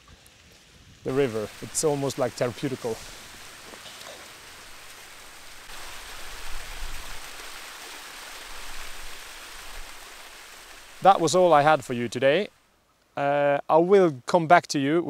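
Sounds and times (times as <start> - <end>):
waterfall rushing over rocks: 1.1 - 12.6.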